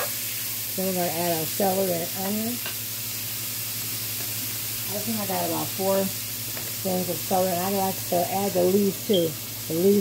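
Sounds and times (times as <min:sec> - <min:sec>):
beef sizzling in a skillet: 0:00.0 - 0:10.0.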